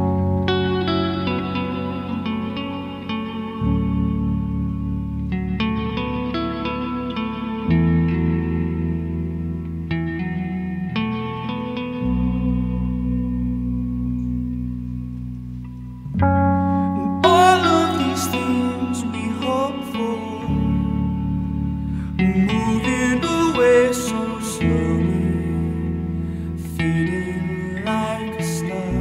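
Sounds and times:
electric guitar: 0:00.0 - 0:29.0
keyboard chords: 0:00.0 - 0:29.0.

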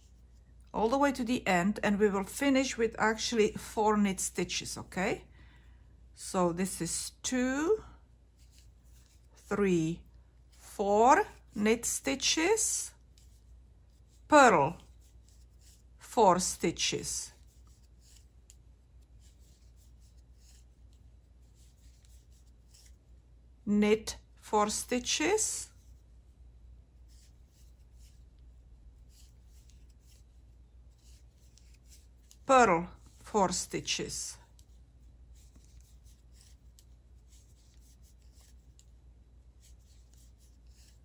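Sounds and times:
yarn rubbing on knitting needles: 0:06.6 - 0:23.4, 0:24.2 - 0:41.0.

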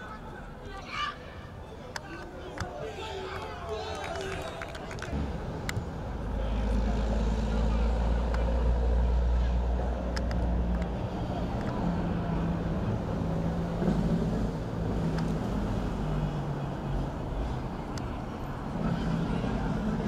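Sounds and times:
distant voices: 0:00.0 - 0:20.0.

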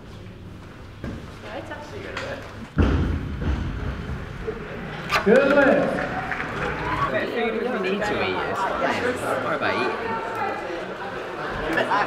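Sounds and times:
heavy thud: 0:02.8 - 0:04.5.

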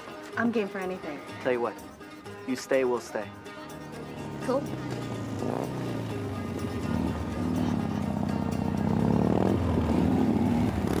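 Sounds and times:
background music: 0:00.0 - 0:11.0
motorcycle engine approaching: 0:03.7 - 0:11.0.

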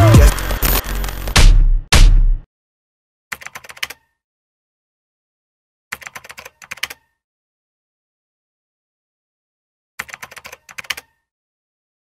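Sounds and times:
keyboard keystroke clicks: 0:06.0 - 0:07.1, 0:10.0 - 0:11.1.

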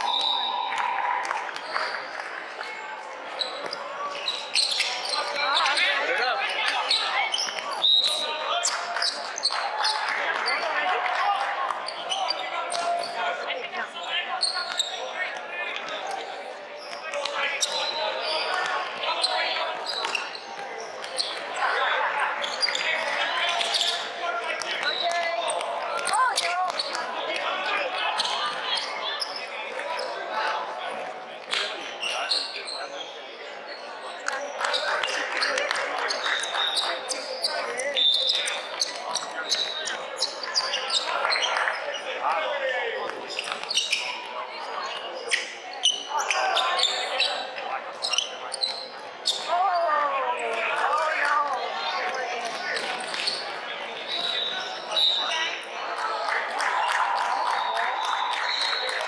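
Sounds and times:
sneakers squeaking: 0:01.5 - 0:10.8, 0:11.7 - 0:30.3, 0:31.0 - 0:42.4, 0:43.0 - 0:49.8, 0:51.8 - 0:55.7, 0:57.5 - 0:59.0.

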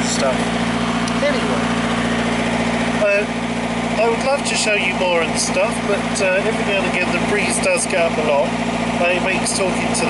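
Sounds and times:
boat diesel engine droning: 0:00.0 - 0:10.0.

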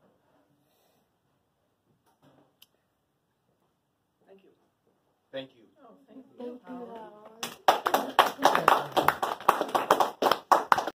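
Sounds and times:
small group applauding: 0:06.8 - 0:10.9.

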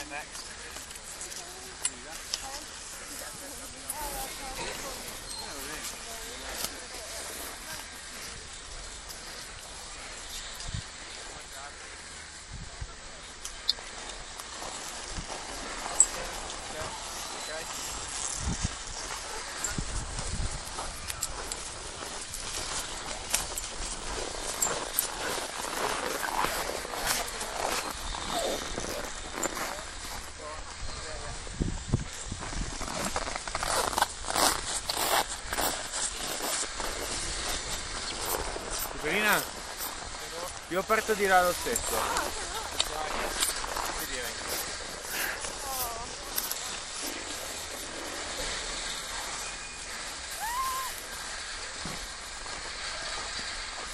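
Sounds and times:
rustling near microphone: 0:00.0 - 0:53.9
steady outdoor hiss: 0:00.0 - 0:53.9.

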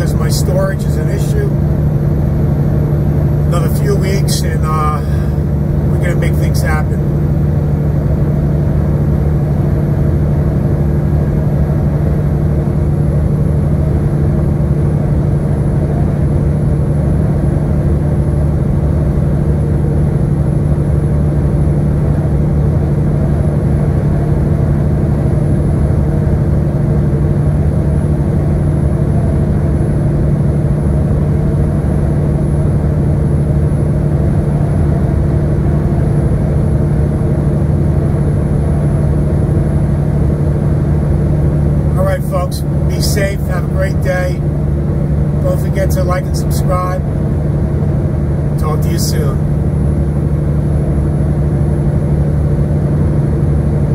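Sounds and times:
person speaking: 0:00.0 - 0:01.6, 0:03.5 - 0:07.1, 0:41.9 - 0:44.4, 0:45.4 - 0:47.0, 0:48.6 - 0:49.4
truck engine drone: 0:00.0 - 0:53.9
road noise: 0:03.5 - 0:07.0, 0:41.9 - 0:44.6, 0:45.4 - 0:47.0.

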